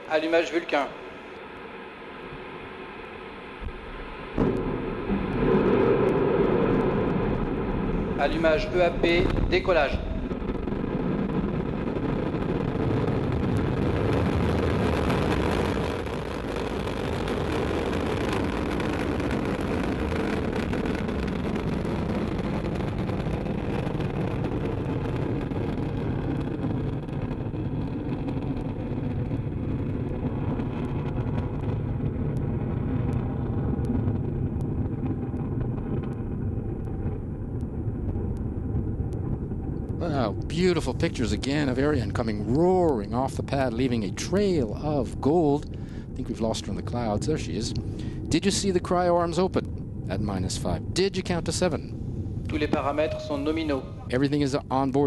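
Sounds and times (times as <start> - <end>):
rocket engine roaring: 0.0 - 55.0.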